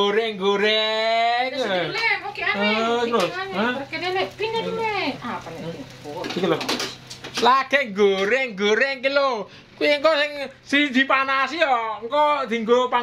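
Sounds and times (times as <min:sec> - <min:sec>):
food sizzling in a wok: 0:00.0 - 0:08.2.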